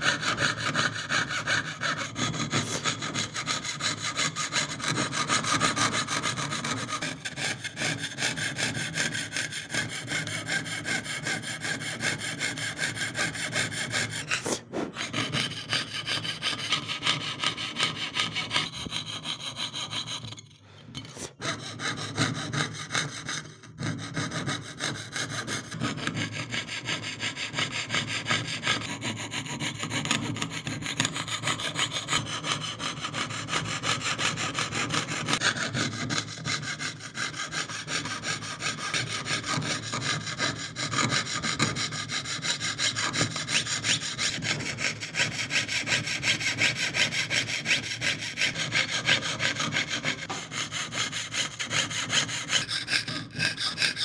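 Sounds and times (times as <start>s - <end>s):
saw cutting sheet metal: 0.0s - 54.0s.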